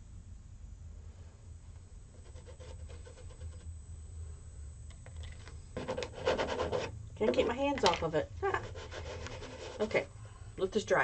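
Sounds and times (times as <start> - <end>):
low hum: 0.0 - 11.0
scraper scraping paint on canvas: 2.1 - 3.7, 5.8 - 7.6, 8.4 - 10.1.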